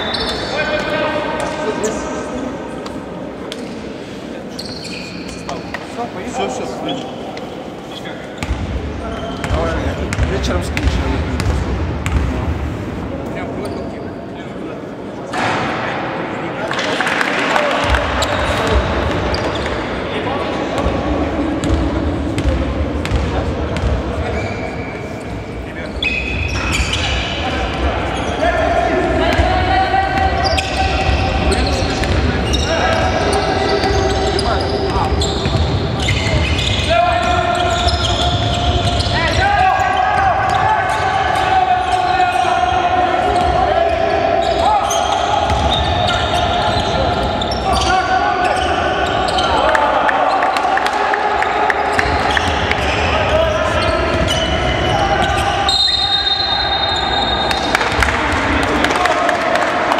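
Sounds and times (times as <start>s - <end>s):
shoe squeaks: 0.0s - 0.9s, 4.5s - 6.0s, 8.0s - 10.2s, 13.6s - 14.3s, 19.3s - 19.9s, 23.7s - 28.5s, 30.4s - 41.1s, 43.4s - 49.6s, 51.9s - 57.8s
basketball bouncing on wooden court: 9.4s - 12.4s.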